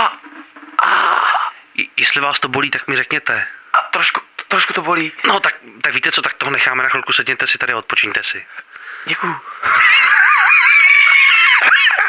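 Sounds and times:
high-pitched scream: 9.7s - 12.0s.

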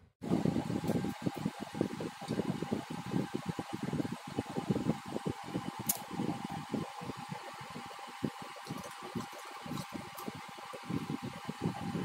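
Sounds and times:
fan air buffeting microphone: 0.0s - 12.0s.

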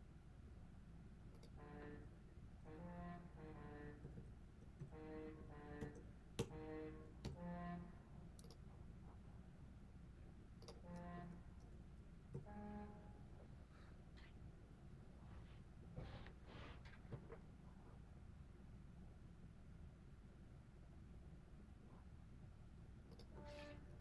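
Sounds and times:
mouse and keyboard clicks: 8.4s - 8.6s.

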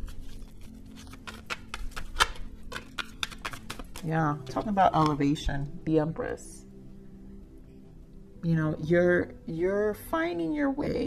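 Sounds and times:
cards clicking and snapping: 0.0s - 5.2s.

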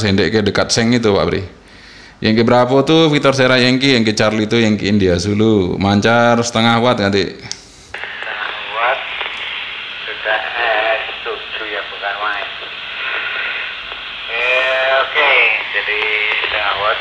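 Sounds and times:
static hiss: 7.7s - 17.0s
radio speech from small speaker: 8.0s - 17.0s.

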